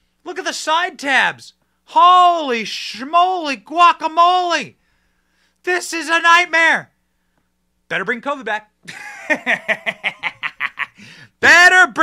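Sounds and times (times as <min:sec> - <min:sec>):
man laughing: 0:08.9 - 0:11.2.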